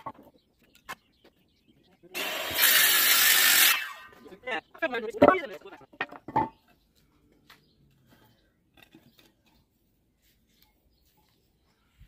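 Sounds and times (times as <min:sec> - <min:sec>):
wooden boards knocking on concrete: 0:05.1 - 0:06.7.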